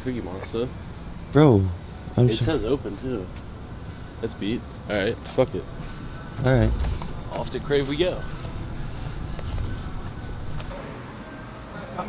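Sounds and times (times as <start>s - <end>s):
traffic rumble: 0.0s - 10.7s.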